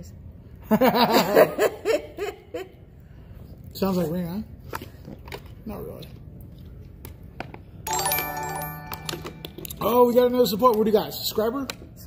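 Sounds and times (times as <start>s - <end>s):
chiming notification jingle: 7.9s - 9.8s.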